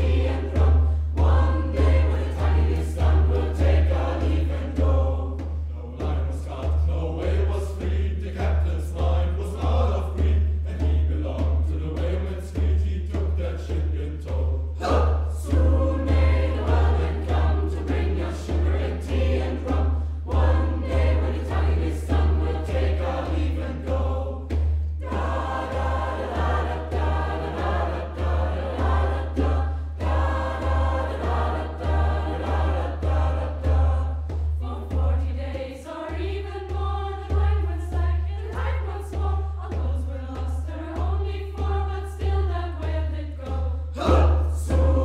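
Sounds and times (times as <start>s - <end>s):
low pulsing beat: 0.0s - 43.2s
choir singing in parts: 0.0s - 45.0s.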